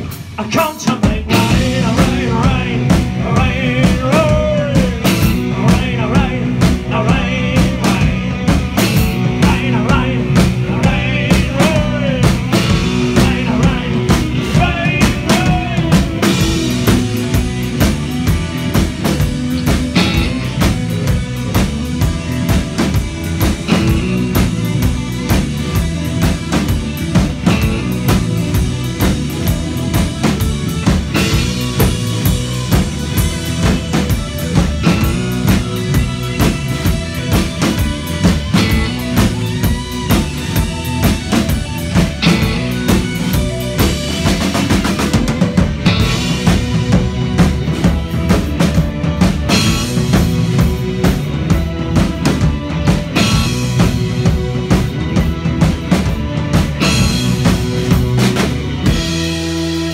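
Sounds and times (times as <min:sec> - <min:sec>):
drum kit steady beat: 0:00.0 - 0:59.9
rock band playing loudly: 0:00.0 - 0:59.9.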